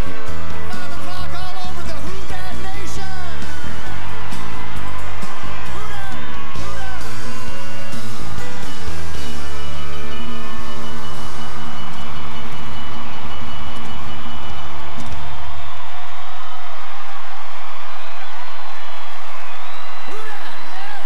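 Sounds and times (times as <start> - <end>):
crowd cheering and applauding: 0.0 - 21.0.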